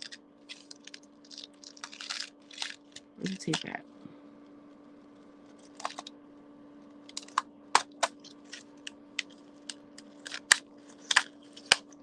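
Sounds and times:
plastic wrap crackling and tearing: 0.0 - 3.8, 5.4 - 6.1, 7.0 - 12.0.

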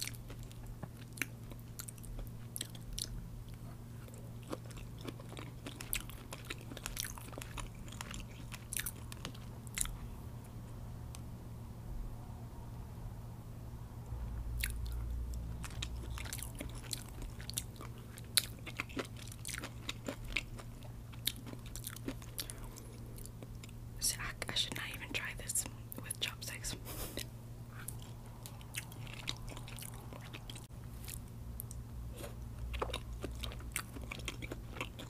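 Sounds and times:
close chewing with mouth clicks: 0.0 - 10.2, 14.6 - 23.8, 25.9 - 35.0
steady low hum: 0.0 - 35.0.

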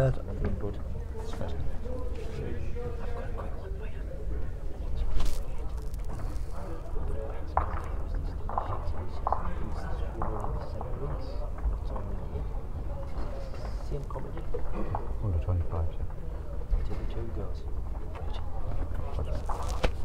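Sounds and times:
faint indistinct voices: 0.0 - 20.0.

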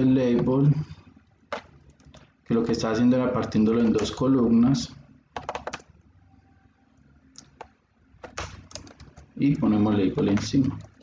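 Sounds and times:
keyboard keystrokes: 1.5 - 2.3, 5.4 - 5.9, 7.4 - 9.3.

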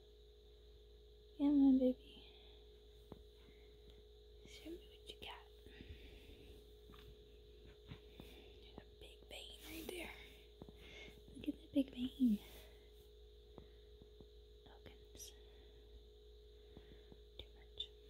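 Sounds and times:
faint hum: 0.0 - 18.0
person whispering: 4.5 - 5.7, 8.7 - 10.4, 11.4 - 12.7
person speaking: 9.0 - 10.4, 11.3 - 12.7.

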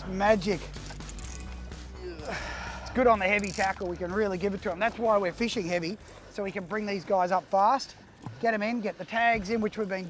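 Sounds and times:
low background music: 0.0 - 7.4.

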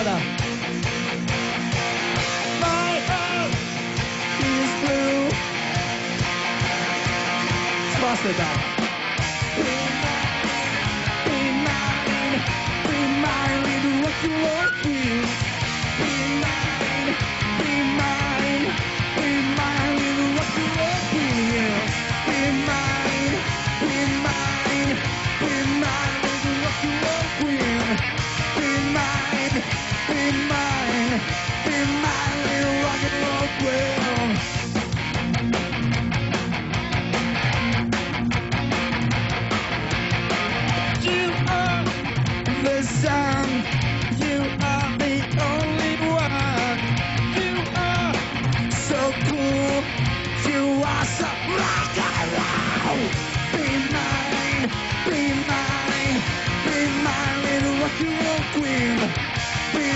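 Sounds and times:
live rock band playing: 0.0 - 59.9
sliding guitar riff: 0.0 - 59.9.

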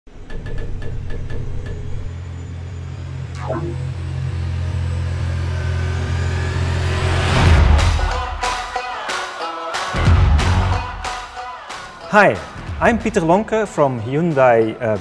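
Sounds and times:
low rumbling drone: 1.6 - 7.9
downward sweep: 3.3 - 4.4
rising whoosh: 3.3 - 8.0.

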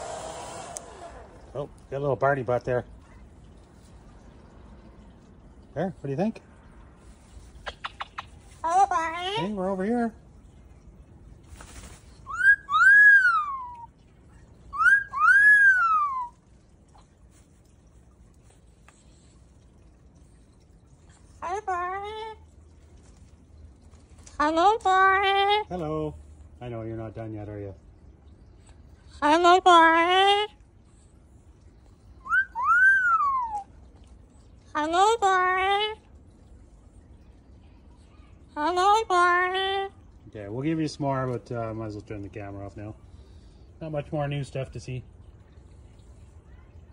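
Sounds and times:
cockatoo whistling: 12.3 - 13.9, 14.7 - 16.4, 32.2 - 33.6.

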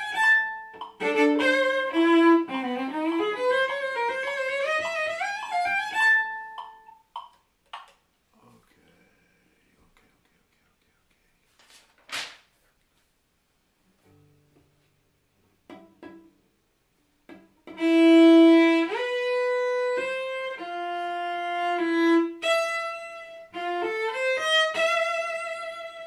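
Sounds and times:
cello bowed notes: 0.0 - 7.0, 17.6 - 26.0
sheet music page rustling: 11.4 - 13.2.

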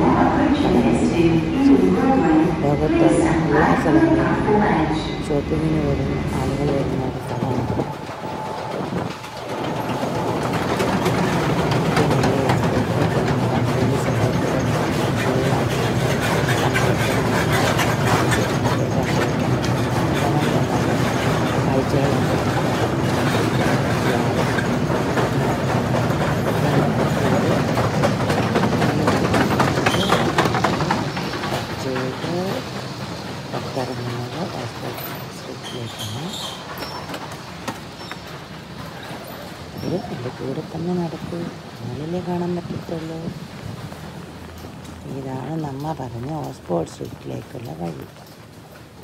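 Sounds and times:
train wheels rumbling on rails: 0.0 - 49.0.

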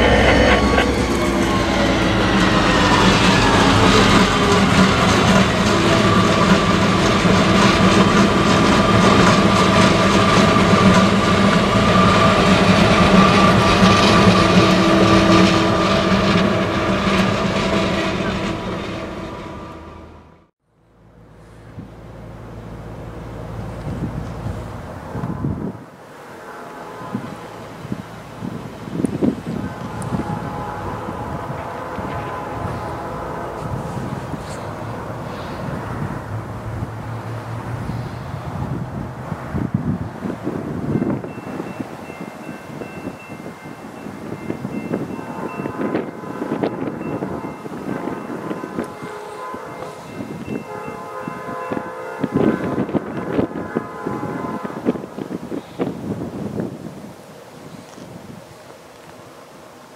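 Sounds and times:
locomotive air horn blasts: 0.0 - 20.2, 24.5 - 36.4, 44.2 - 56.2
wind buffeting microphone: 23.0 - 26.1, 26.9 - 58.7.

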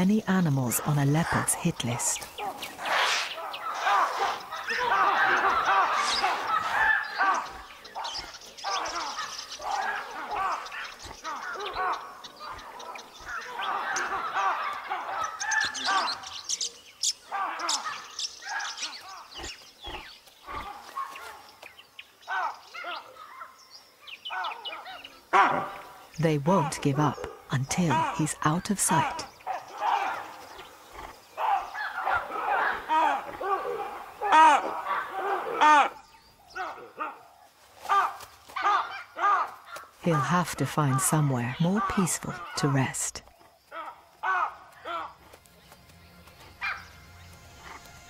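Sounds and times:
baboons giving alarm calls: 0.0 - 21.5, 22.2 - 23.6, 24.3 - 45.4.

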